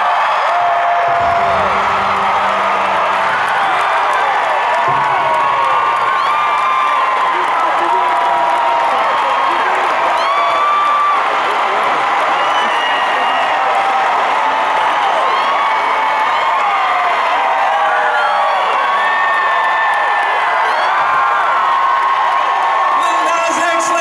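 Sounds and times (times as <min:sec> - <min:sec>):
stadium crowd cheering and clapping: 0:00.0 - 0:24.0.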